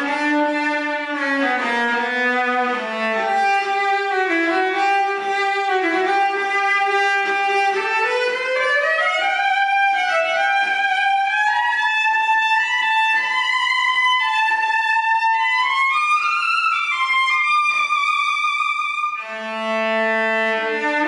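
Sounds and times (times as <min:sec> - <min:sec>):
cello bowed melody: 0:00.0 - 0:21.0.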